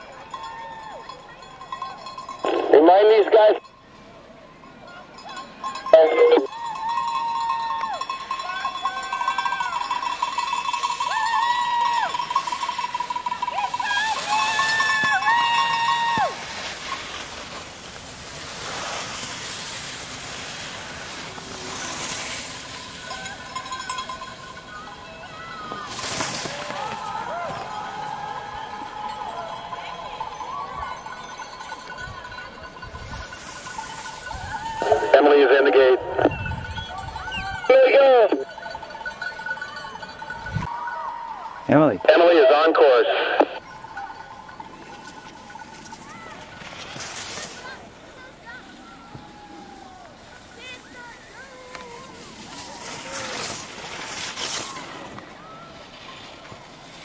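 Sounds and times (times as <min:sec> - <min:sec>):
spectators shouting encouragement: 0:00.0 - 0:01.4, 0:06.0 - 0:10.1, 0:10.9 - 0:12.3, 0:13.2 - 0:16.5, 0:23.0 - 0:31.4, 0:40.7 - 0:44.2, 0:48.3 - 0:53.6
cowbell shaken rapidly: 0:00.0 - 0:02.7, 0:04.9 - 0:16.0, 0:20.6 - 0:26.2, 0:28.9 - 0:35.1, 0:38.3 - 0:40.7, 0:43.6 - 0:46.6
crowd cheering calls: 0:00.0 - 0:17.0, 0:20.3 - 0:32.9, 0:33.6 - 0:46.6, 0:48.1 - 0:57.0.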